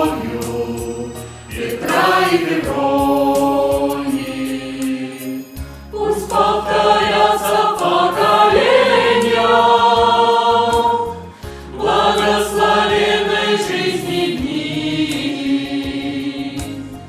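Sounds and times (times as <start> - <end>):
mixed choir singing chords: 0.0 - 17.0.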